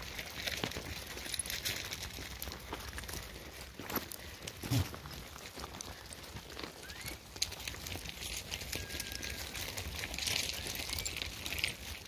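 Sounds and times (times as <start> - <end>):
hooves clattering on rock: 0.0 - 12.0
short rising whistles: 6.8 - 7.2.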